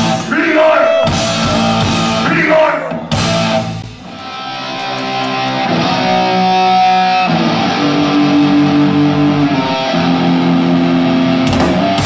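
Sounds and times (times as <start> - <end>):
drums and cymbals crashing: 1.1 - 2.4, 3.0 - 5.6, 11.4 - 12.0
electric guitar chords: 3.0 - 12.0.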